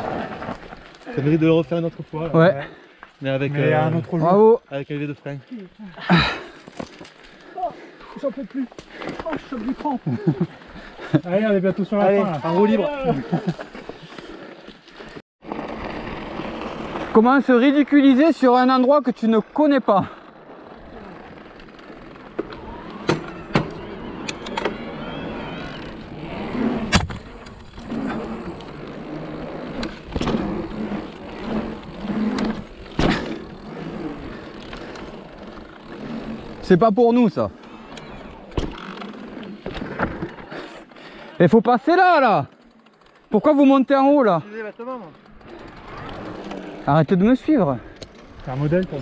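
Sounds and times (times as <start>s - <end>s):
bike tyres humming on tarmac: 0.0s - 49.0s
bike knocking and clattering: 26.8s - 36.1s.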